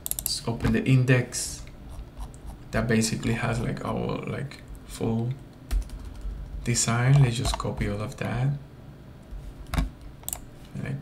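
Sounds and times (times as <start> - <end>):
sharp clicks: 0.0 - 0.4
computer keyboard keys pressed: 5.7 - 7.9.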